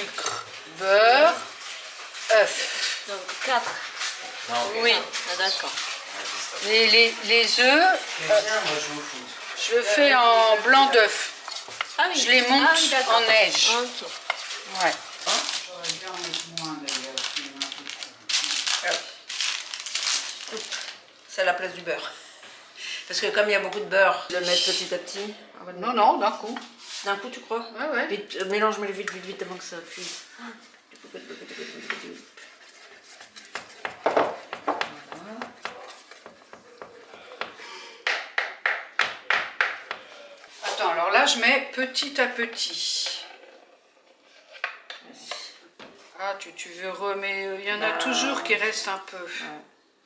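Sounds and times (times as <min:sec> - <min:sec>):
wooden spatula stirring batter: 0:00.0 - 0:15.3, 0:28.9 - 0:40.9
scraping and rustling handling noises: 0:00.0 - 0:21.1
speech: 0:47.6 - 0:49.7.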